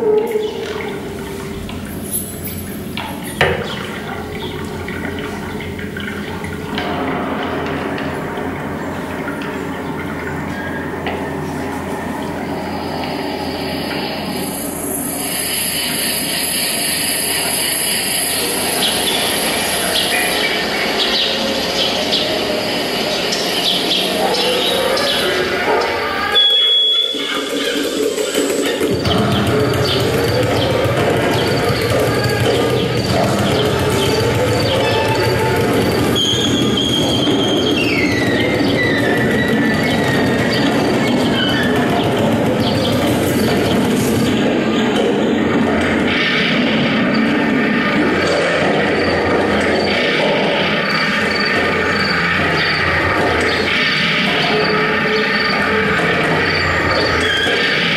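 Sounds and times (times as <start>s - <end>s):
low drone: 0.0s - 57.9s.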